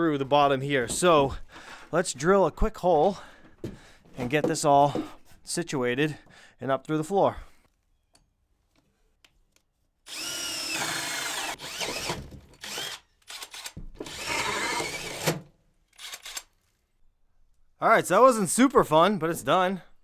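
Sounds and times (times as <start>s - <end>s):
cordless drill cutting wood: 10.1s - 15.4s, 16.0s - 16.5s.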